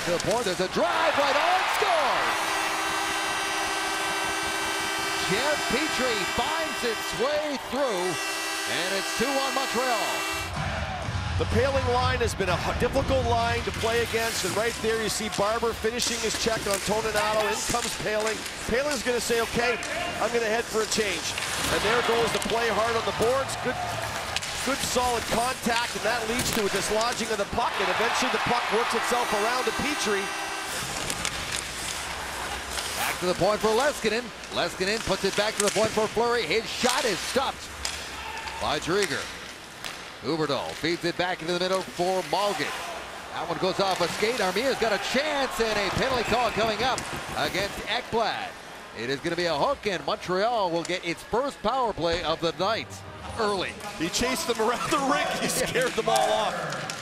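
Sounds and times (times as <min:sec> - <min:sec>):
hockey sticks clicking on puck: 0:00.0 - 0:07.6, 0:13.7 - 0:51.1, 0:53.8 - 0:57.0
skates scraping ice: 0:00.0 - 0:10.4, 0:13.1 - 0:52.1, 0:53.2 - 0:57.0
crowd noise: 0:00.0 - 0:18.1, 0:18.7 - 0:36.6, 0:41.4 - 0:57.0
arena goal horn blast: 0:00.3 - 0:10.9, 0:18.8 - 0:34.0.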